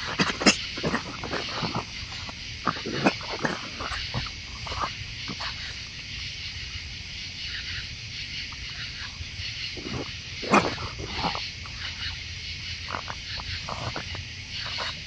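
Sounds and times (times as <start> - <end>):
raccoons eating and jostling: 0.0 - 15.0.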